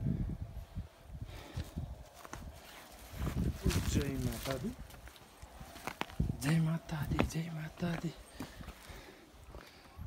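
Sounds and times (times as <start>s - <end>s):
footsteps crunching on gravel: 1.6s - 9.8s.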